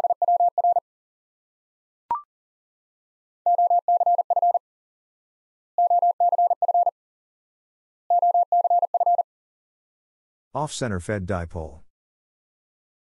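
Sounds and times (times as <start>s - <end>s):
morse code beeps: 0.0s - 0.8s, 3.5s - 4.6s, 5.8s - 6.9s, 8.1s - 9.2s.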